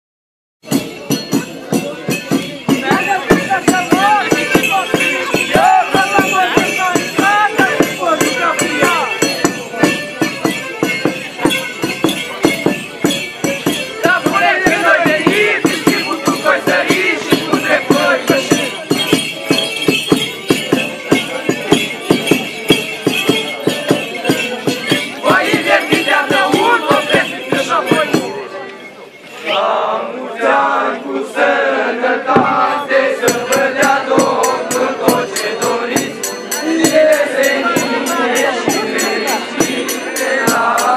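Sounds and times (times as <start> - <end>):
drum beats: 0.6 - 28.5, 32.2 - 40.9
bells jingling: 0.6 - 40.9
voices calling out: 0.7 - 40.9
children chanting a carol: 2.7 - 9.5, 14.0 - 18.9, 24.6 - 28.6, 29.4 - 40.9.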